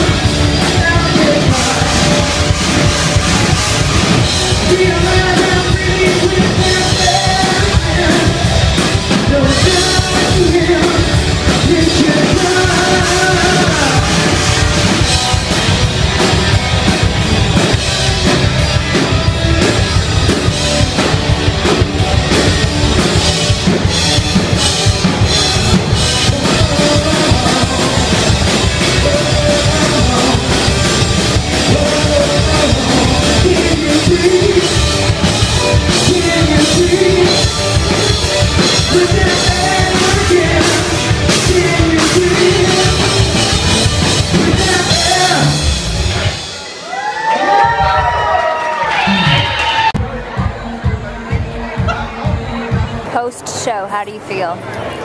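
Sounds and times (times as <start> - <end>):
male lead singer: 0.0 - 46.4
rock band playing: 0.0 - 55.0.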